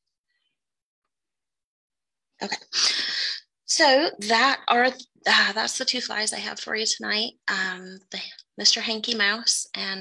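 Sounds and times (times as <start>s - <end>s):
woman speaking: 2.4s - 10.0s.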